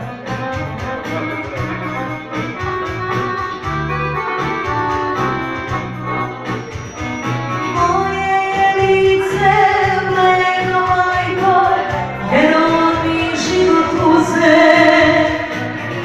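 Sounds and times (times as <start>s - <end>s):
amplified music with bass beat: 0.0s - 16.0s
woman singing into microphone: 7.8s - 16.0s.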